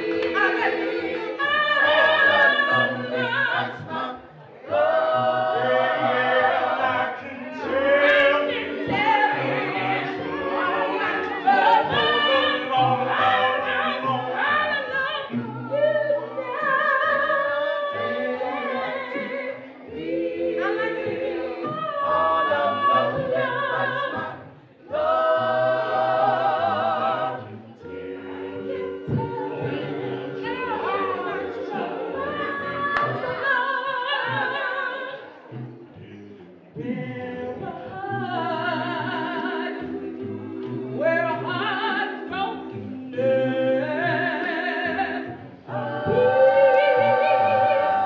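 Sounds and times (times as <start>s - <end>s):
choir singing a cappella: 0.0s - 48.0s.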